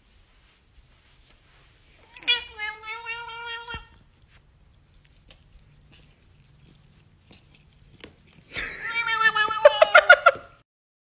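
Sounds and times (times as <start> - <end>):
cat meowing: 2.0 - 4.0, 8.6 - 10.4.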